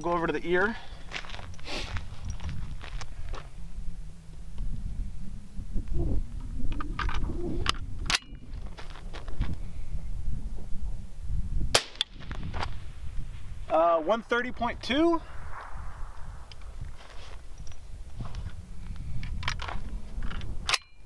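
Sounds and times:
suppressed rifle shot: 0:11.7 - 0:12.4, 0:15.2 - 0:16.8
rifle handling clicks and knocks: 0:19.2 - 0:21.0.

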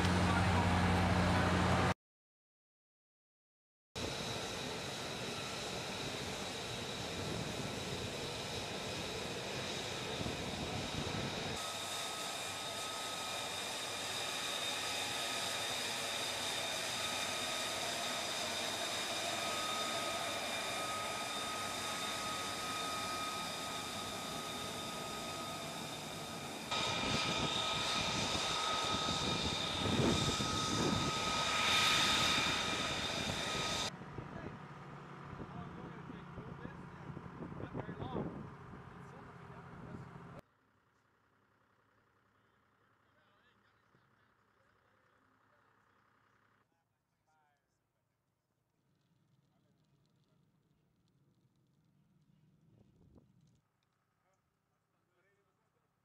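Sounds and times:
jet engine whining: 0:04.0 - 0:40.4.

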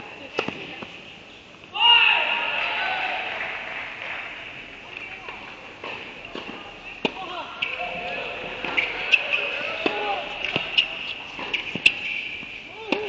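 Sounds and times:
balls bouncing on hard court: 0:04.9 - 0:13.0
tennis balls struck by rackets: 0:05.0 - 0:13.0.

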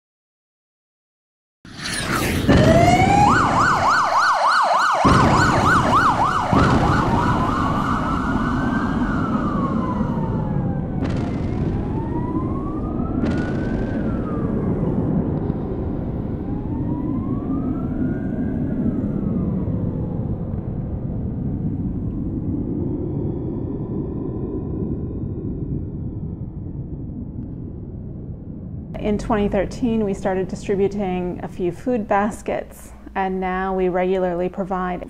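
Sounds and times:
electronic siren yelp and wail: 0:02.0 - 0:21.2
steady low rumble: 0:05.0 - 0:35.0.

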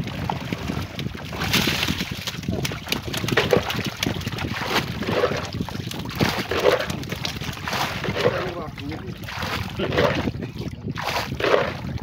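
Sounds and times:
water splashing and sloshing: 0:00.0 - 0:12.0.

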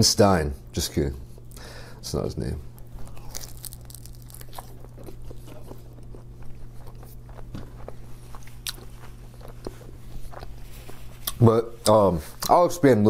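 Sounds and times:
steady low hum: 0:00.0 - 0:13.0
biting and chewing food: 0:02.7 - 0:12.6.

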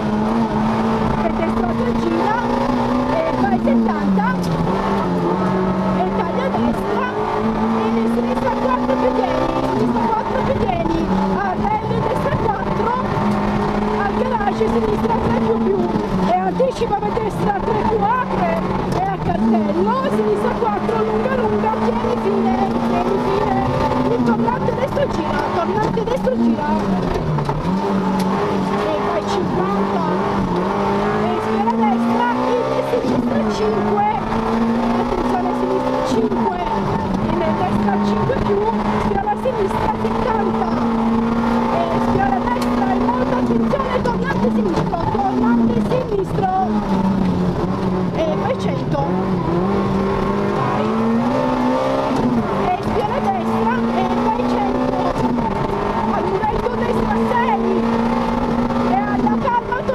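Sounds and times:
rally car engine revving hard: 0:00.0 - 0:59.9.

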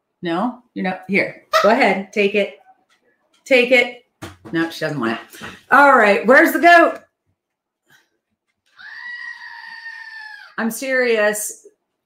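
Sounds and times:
goat scream from toy: 0:08.8 - 0:10.6.

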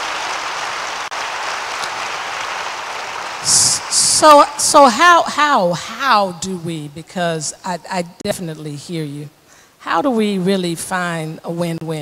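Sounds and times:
audience applauding: 0:00.0 - 0:04.1.

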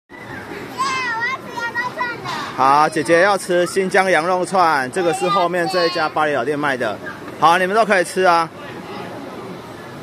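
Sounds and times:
steady background noise: 0:00.1 - 0:10.0
child's wordless vocalisations: 0:00.7 - 0:03.1, 0:05.0 - 0:06.2.

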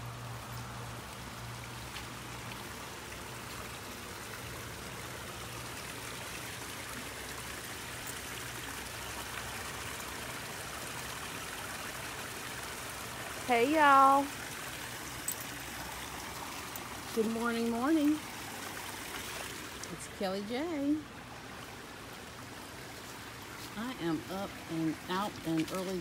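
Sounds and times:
small waterfall: 0:00.0 - 0:26.0
water rushing over rocks: 0:00.6 - 0:20.2.

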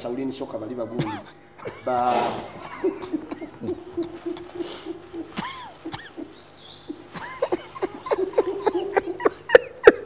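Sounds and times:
people stifling laughter: 0:01.6 - 0:10.0.

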